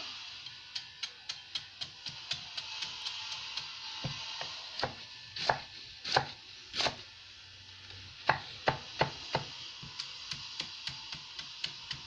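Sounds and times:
knife chopping on wooden board: 4.8 - 7.0, 8.2 - 10.0.

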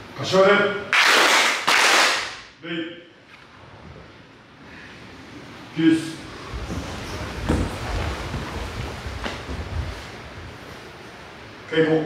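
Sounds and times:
group clapping hands in unison: 0.9 - 2.5.

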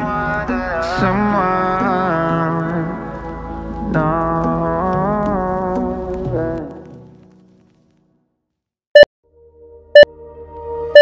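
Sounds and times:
music: 0.0 - 8.1, 9.2 - 11.0.

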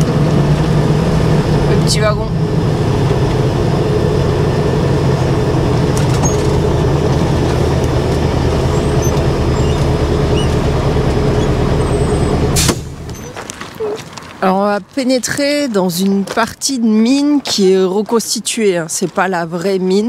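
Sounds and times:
truck diesel engine running: 0.0 - 14.2.

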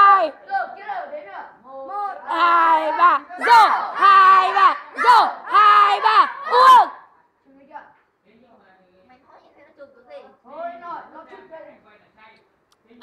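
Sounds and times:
group shouting in unison: 0.0 - 0.9, 2.0 - 7.2.

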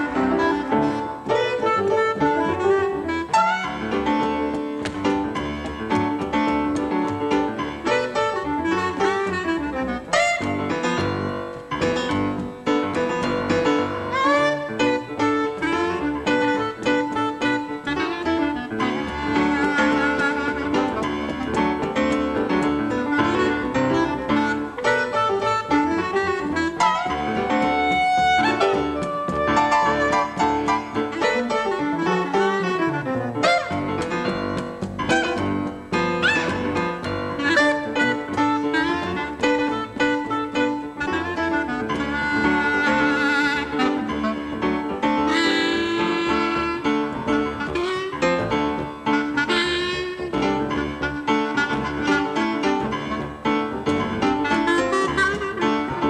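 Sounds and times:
clarinet: 0.0 - 56.0
piano: 0.0 - 56.0
plucked double bass: 0.0 - 56.0.

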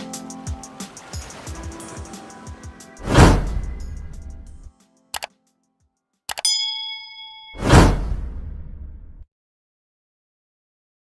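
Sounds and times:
whoosh: 3.0 - 4.2, 7.5 - 9.2
bell ding: 6.3 - 8.1.

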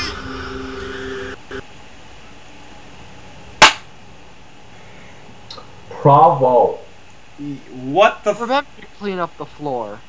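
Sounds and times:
faint background hiss: 1.4 - 10.0
loud sharp crack: 3.6 - 3.9.

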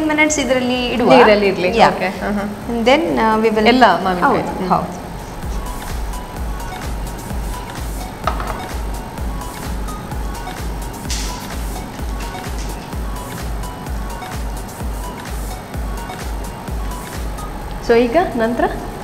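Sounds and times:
music with steady bass beat: 0.0 - 19.0.

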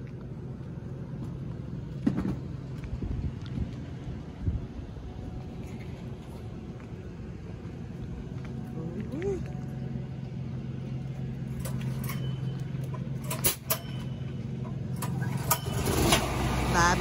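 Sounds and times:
engine humming: 0.0 - 17.0.

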